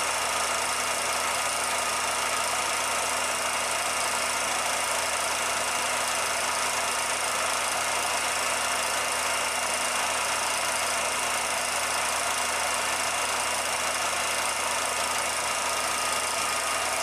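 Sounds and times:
film projector whirring: 0.0s - 17.0s.

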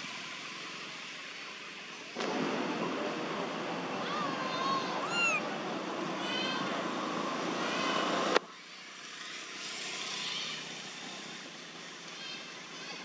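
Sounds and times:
steady background noise: 0.0s - 13.0s
baby macaque coo calls: 5.0s - 5.4s.

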